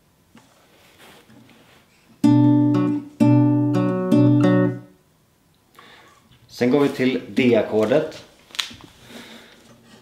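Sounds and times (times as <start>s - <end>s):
fingerpicked acoustic guitar: 2.1s - 5.0s.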